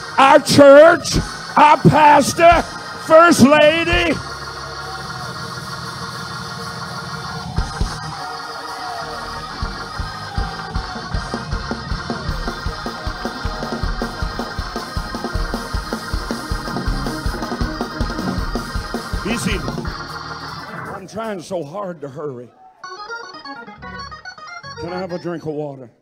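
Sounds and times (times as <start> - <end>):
guitar and keyboard chords: 0.0 - 4.9, 9.2 - 21.0, 22.8 - 25.5
fast driving drum beat: 7.6 - 8.2, 9.4 - 20.2.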